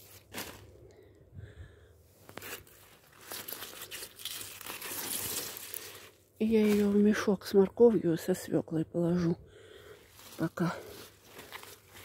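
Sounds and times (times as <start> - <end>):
leaves rustling and crackling: 0.0 - 0.8, 2.2 - 7.6, 10.0 - 12.0.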